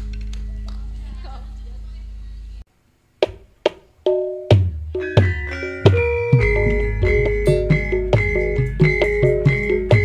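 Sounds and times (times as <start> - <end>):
gamelan sustained note ringing: 4.1 - 10.0
sharp gamelan strikes: 4.1 - 10.0.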